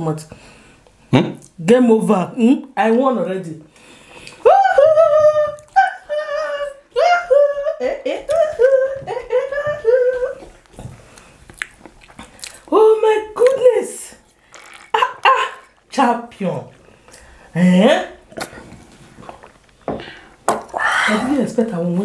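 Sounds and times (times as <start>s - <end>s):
woman's sing-song voice: 4.4s - 10.6s.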